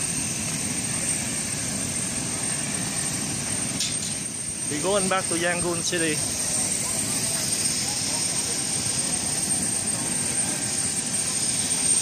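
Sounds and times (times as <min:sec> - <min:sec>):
aircraft engine droning: 0:00.0 - 0:12.0.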